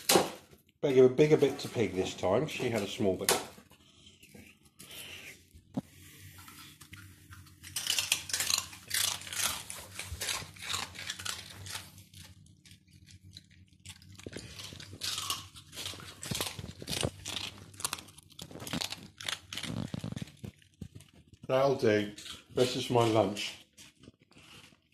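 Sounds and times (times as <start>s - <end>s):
dogs crunching crackling: 6.2s - 24.9s.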